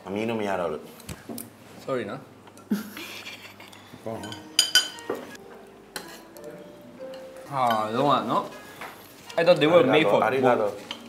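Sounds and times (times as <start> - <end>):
tableware clinking: 3.6 - 9.7.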